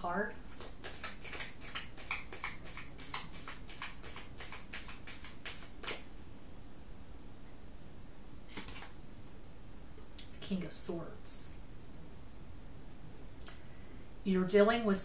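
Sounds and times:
card rustle: 0.5s - 6.0s, 8.5s - 9.0s
cards being shuffled: 0.5s - 6.1s, 8.5s - 9.0s.

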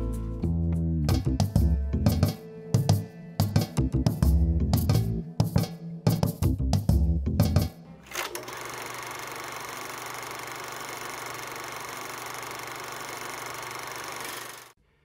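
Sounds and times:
music with a beat: 0.0s - 7.9s
film projector whirring: 8.1s - 14.8s.

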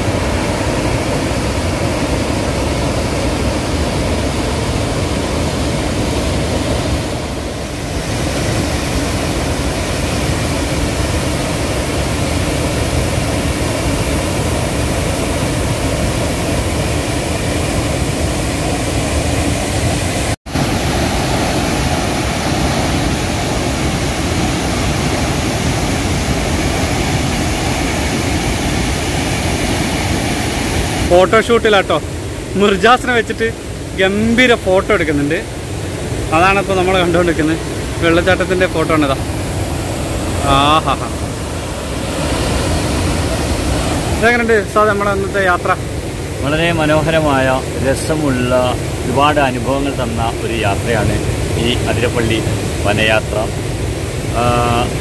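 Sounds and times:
waterfall roaring: 0.0s - 55.0s.

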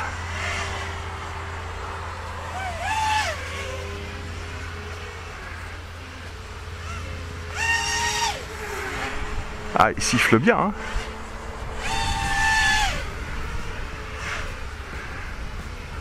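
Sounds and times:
steady low rumble: 0.0s - 7.6s, 8.4s - 16.0s
drone motors whistling: 0.0s - 16.0s.

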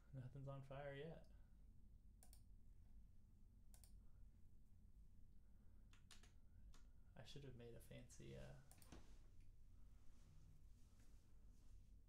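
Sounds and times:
low steady hum: 0.0s - 12.0s
computer mouse clicks: 2.2s - 2.5s, 3.7s - 4.0s, 5.9s - 6.9s, 8.7s - 9.0s.

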